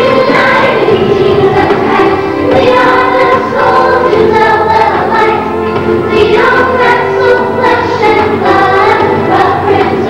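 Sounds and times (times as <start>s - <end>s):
children singing in unison: 0.0s - 10.0s.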